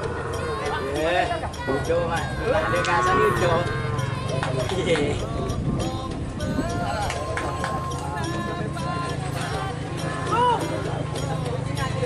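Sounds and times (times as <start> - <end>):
men shouting: 0.0 - 5.4, 6.6 - 11.1
high held note: 2.3 - 4.3.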